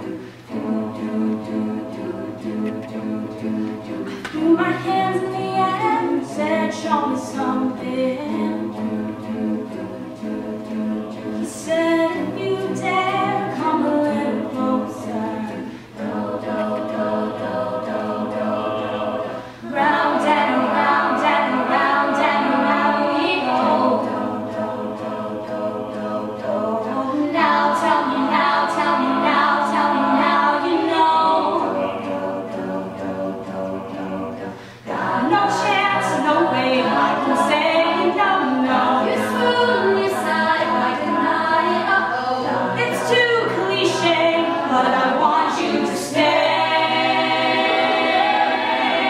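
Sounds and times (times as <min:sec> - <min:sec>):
a cappella group singing: 0:00.0 - 0:49.0.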